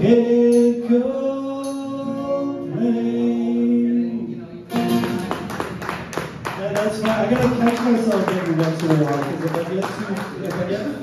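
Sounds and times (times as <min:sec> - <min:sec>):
acoustic guitar strumming: 0:00.0 - 0:05.7.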